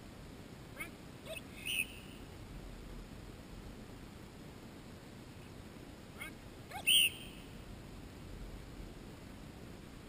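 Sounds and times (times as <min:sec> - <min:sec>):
dog whistle blast: 0:06.8 - 0:07.4.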